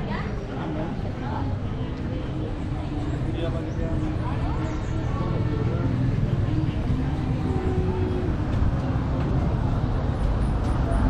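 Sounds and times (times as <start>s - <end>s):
background voices: 0.0s - 11.0s.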